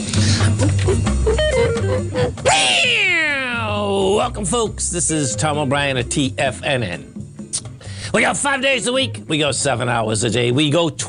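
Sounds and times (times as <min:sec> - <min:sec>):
guitar music: 0:00.0 - 0:09.5.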